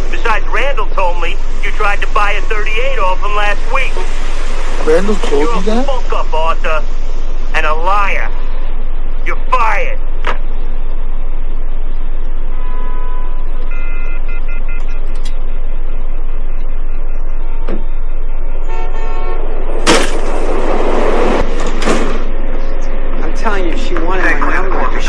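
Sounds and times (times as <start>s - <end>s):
city street traffic: 0.0s - 25.0s
car horns honking: 12.5s - 15.2s, 18.4s - 19.7s
loud bangs: 19.8s - 22.8s.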